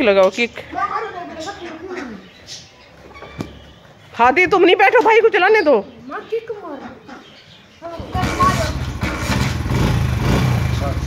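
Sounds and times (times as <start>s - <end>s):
motorcycle kick start: 8.0s - 11.0s.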